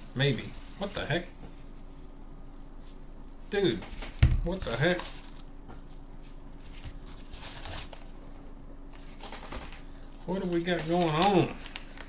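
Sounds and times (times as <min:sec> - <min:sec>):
paper mailer rustling: 0:03.7 - 0:12.0.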